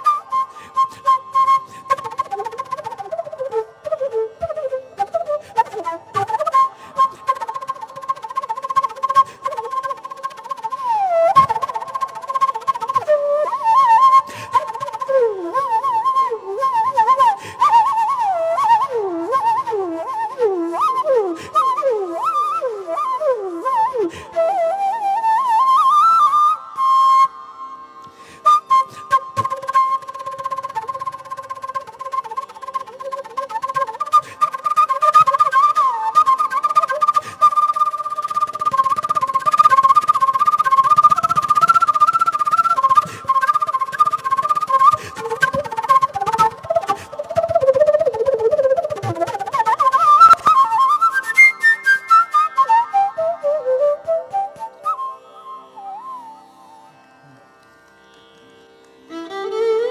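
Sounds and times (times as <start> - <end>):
bamboo flute melody: 0.0 - 57.6, 59.1 - 59.9.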